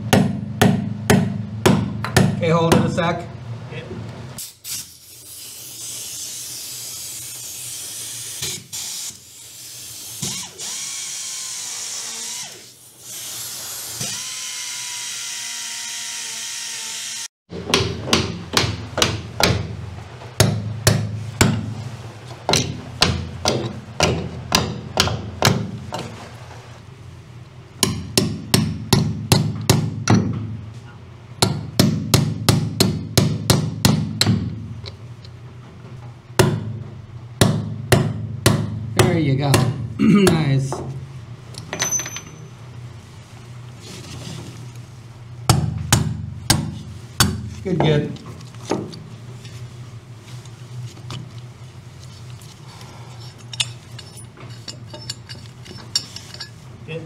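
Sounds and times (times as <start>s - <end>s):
steady air hiss: 4.4s - 10.2s
hammer tapping: 17.6s - 19.7s, 22.5s - 25.7s.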